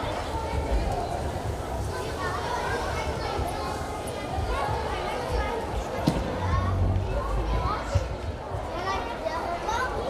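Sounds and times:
children chattering and calling out: 0.0s - 10.0s
sharp thump: 6.0s - 6.4s.

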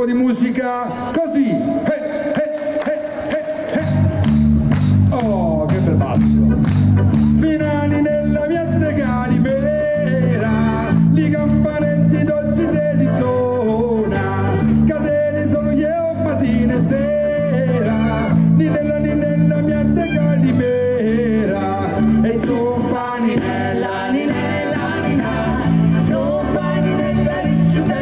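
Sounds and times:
person singing: 7.3s - 28.0s
folk band playing: 15.9s - 28.0s.

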